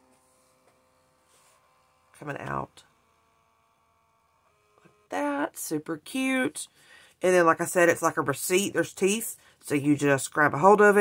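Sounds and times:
thermal printer motor whirring: 0:00.0 - 0:05.2.

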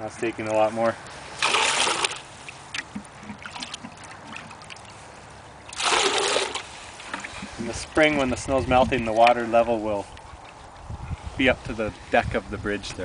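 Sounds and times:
bucket splashing in stream: 0:01.3 - 0:05.0, 0:05.6 - 0:07.7.

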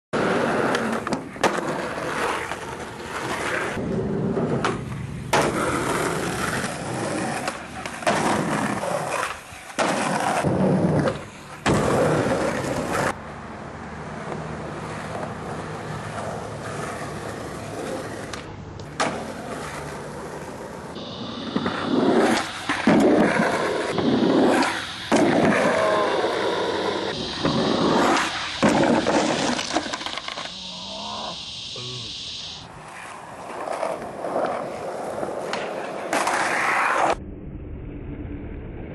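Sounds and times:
skateboard wheels rolling on pavement: 0:00.2 - 0:37.2.

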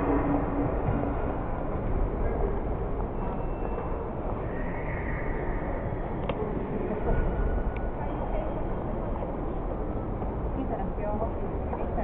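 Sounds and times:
faint indistinct voices: 0:00.0 - 0:12.0
indoor hall background noise: 0:00.0 - 0:12.0.

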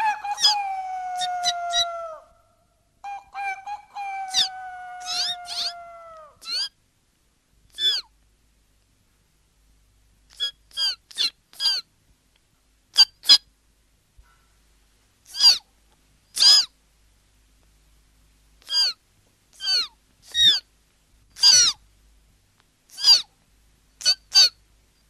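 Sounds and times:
cartoon bird calls: 0:00.0 - 0:02.2, 0:03.1 - 0:06.7, 0:15.3 - 0:15.6, 0:16.4 - 0:16.7, 0:18.7 - 0:19.0, 0:19.6 - 0:20.6, 0:21.4 - 0:21.8, 0:22.9 - 0:23.3.

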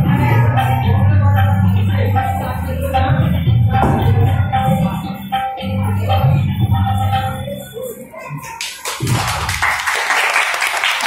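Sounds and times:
music: 0:00.0 - 0:11.0
audience applauding: 0:08.6 - 0:11.0.

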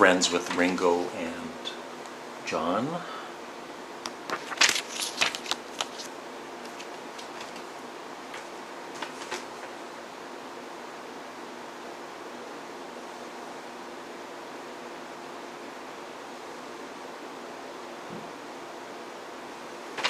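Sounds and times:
faint hum: 0:00.0 - 0:20.0.

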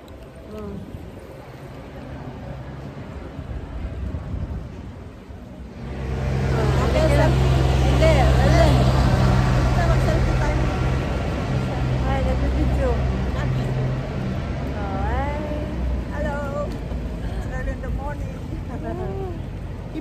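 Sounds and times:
street noise: 0:00.0 - 0:20.0
vehicle engine humming: 0:00.0 - 0:20.0
voices: 0:05.6 - 0:20.0.

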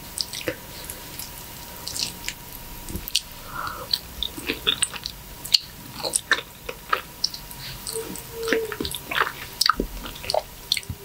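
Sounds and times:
biting and chewing mango: 0:00.0 - 0:11.0.

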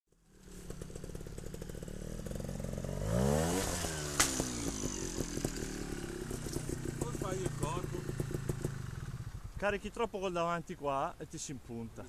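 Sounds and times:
motorcycle engine revving: 0:00.1 - 0:10.0.

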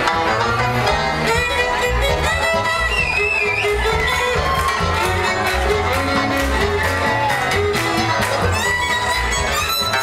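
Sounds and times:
double bass: 0:00.0 - 0:10.0
drums keeping a steady beat: 0:00.0 - 0:10.0
violin melody: 0:00.0 - 0:10.0.

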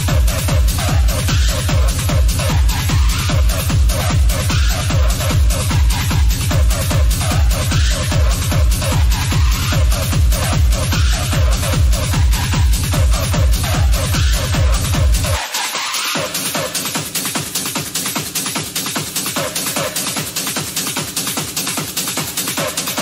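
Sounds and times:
techno music: 0:00.0 - 0:23.0.

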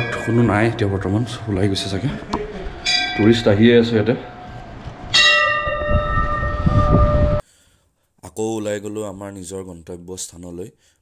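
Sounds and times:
temple bell ringing: 0:00.0 - 0:07.4.

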